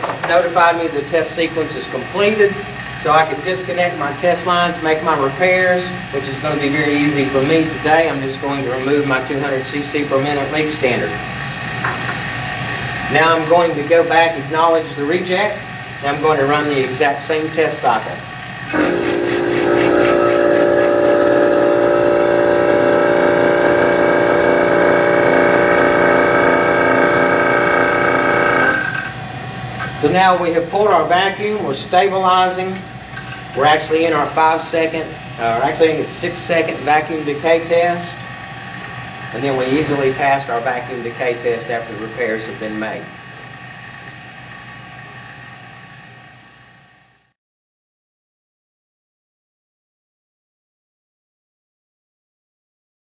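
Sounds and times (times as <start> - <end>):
vacuum pump humming: 17.8 - 30.1
faint high whine: 18.7 - 29.1.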